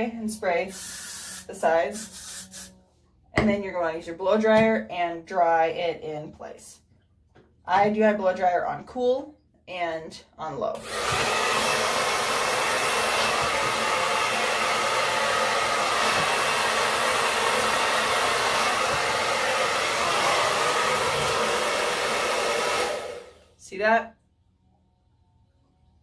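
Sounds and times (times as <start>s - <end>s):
hair dryer blowing: 10.8s - 23.6s.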